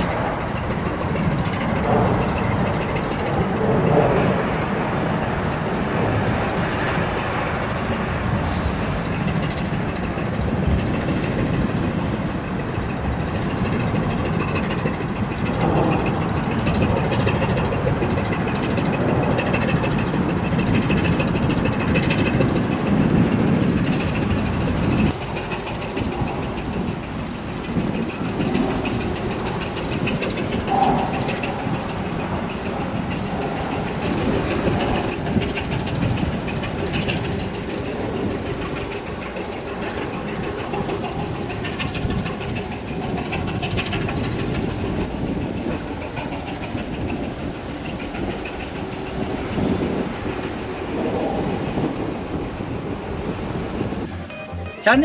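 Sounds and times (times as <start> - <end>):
ship diesel engine rumble: 0.0 - 55.0
wind and water hiss: 0.0 - 55.0.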